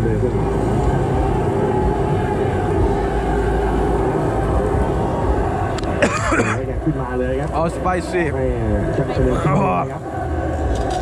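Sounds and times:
faint voices: 0:00.0 - 0:11.0
low background rumble: 0:00.0 - 0:11.0.

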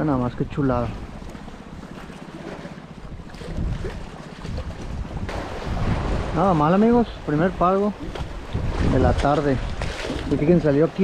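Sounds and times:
wind rumbling on microphone: 0:00.0 - 0:11.0
sea water washing: 0:00.6 - 0:11.0.

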